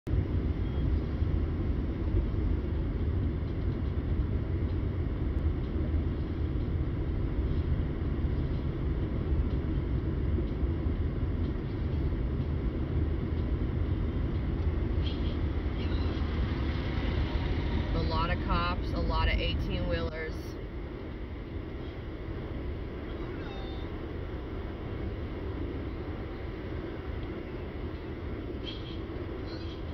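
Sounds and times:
car road and engine rumble: 0.0s - 29.9s.

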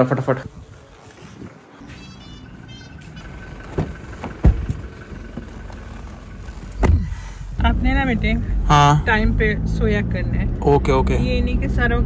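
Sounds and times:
car door thump: 3.6s - 4.9s, 6.8s - 7.2s.

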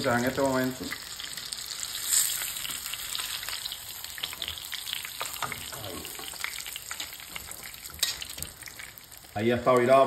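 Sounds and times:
fish frying in hot oil: 0.0s - 10.0s.

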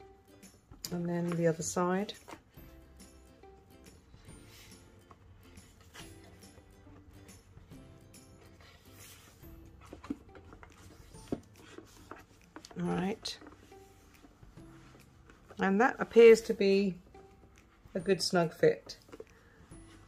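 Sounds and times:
quiet background music: 0.0s - 20.0s
light knocks of book handling: 8.4s - 16.8s.

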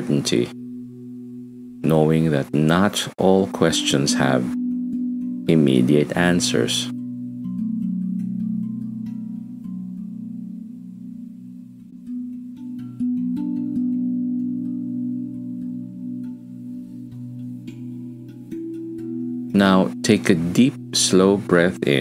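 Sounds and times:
ambient drone music: 0.0s - 22.0s.

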